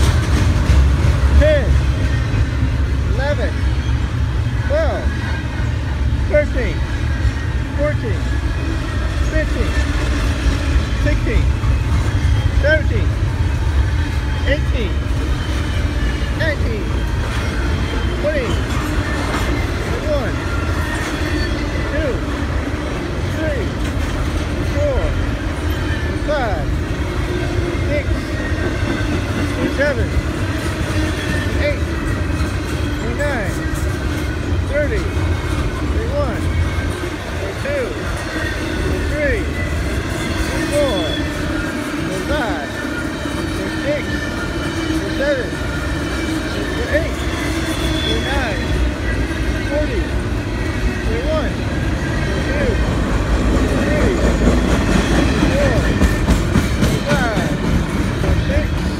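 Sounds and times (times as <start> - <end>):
train wheels rumbling on rails: 0.0 - 58.9
high wheel squeaks: 1.4 - 58.9.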